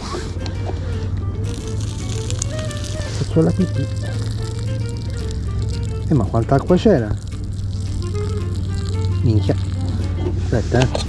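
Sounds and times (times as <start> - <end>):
background music held notes: 0.0 - 11.0
water pouring through strainer: 1.4 - 11.0.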